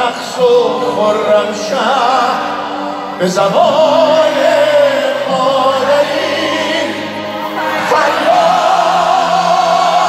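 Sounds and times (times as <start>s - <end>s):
held choir-like tones: 0.6s - 10.0s.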